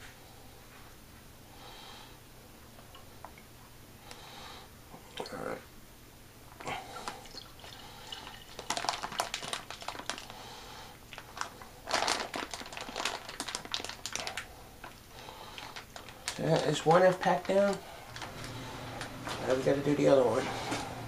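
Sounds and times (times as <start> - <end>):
plastic pouch crinkling: 7.0 - 10.4, 11.0 - 19.2.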